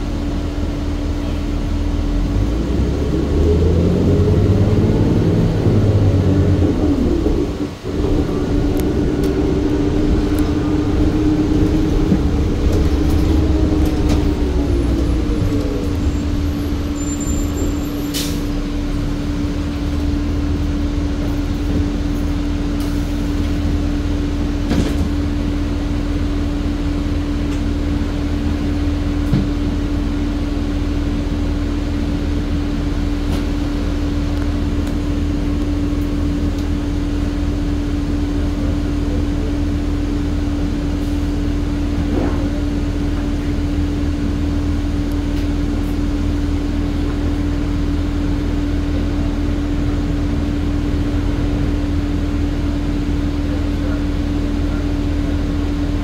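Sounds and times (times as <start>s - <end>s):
bus engine speeding up: 0.0s - 56.0s.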